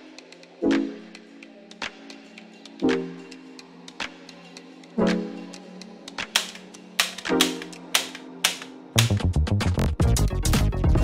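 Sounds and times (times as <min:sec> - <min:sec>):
background music with sustained notes: 0:00.0 - 0:11.0
staple gun firing: 0:06.3 - 0:09.2.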